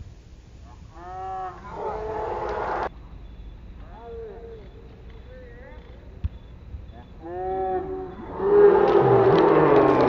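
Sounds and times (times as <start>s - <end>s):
people yelling in celebration: 1.5s - 2.9s.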